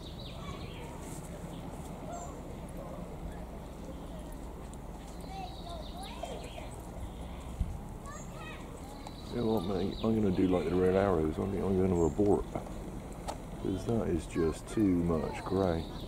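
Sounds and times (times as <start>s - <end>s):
birds chirping: 0.0s - 16.0s
distant helicopter rotors beating: 0.0s - 16.0s.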